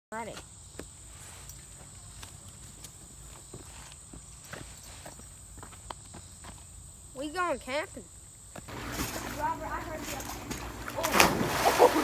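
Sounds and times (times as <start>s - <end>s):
high-pitched insect chorus: 0.2s - 8.7s
footsteps on sandy ground: 1.1s - 6.7s.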